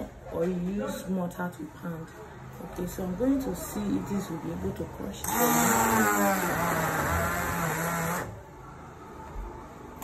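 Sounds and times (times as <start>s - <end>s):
stick blender motor labouring: 5.2s - 8.4s.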